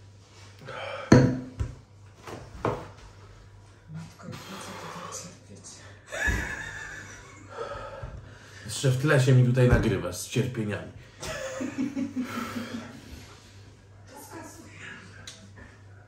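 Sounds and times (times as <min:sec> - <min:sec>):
man breathing hard: 0:07.5 - 0:08.7.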